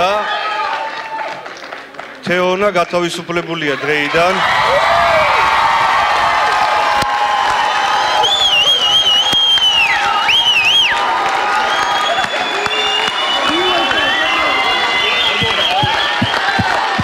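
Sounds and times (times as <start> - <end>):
audience applauding and cheering: 0.1 - 2.2, 4.2 - 17.0
crowd voices: 12.2 - 17.0.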